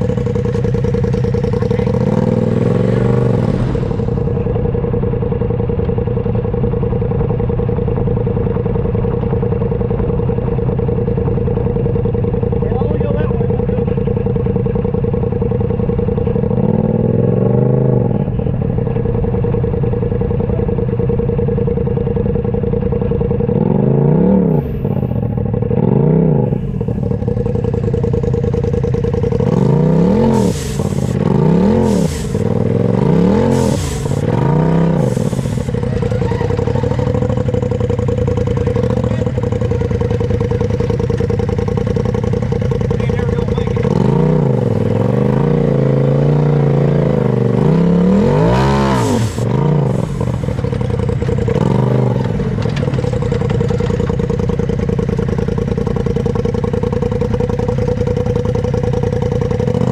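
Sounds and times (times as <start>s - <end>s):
buggy engine revving: 0.0s - 59.9s.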